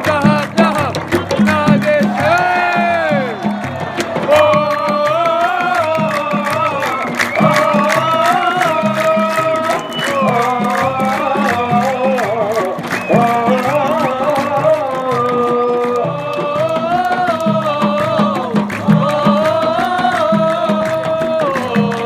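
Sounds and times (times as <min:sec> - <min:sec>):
crowd singing a chant: 0:00.0 - 0:22.0
frame drums beating: 0:00.0 - 0:22.0.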